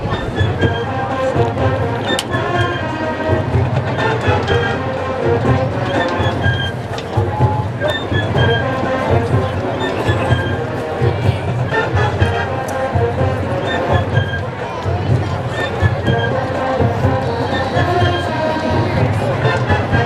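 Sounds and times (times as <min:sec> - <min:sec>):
marching band playing: 0:00.0 - 0:20.0.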